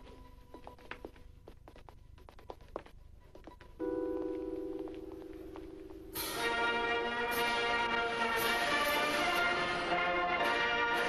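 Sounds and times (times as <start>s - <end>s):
footsteps on hard floor: 0.0s - 6.4s
brass band playing chord: 6.2s - 11.0s.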